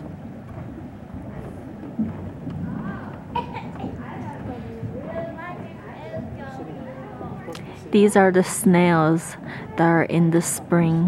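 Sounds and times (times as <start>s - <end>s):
wind rumbling on microphone: 0.0s - 11.0s
indistinct voices: 2.5s - 11.0s.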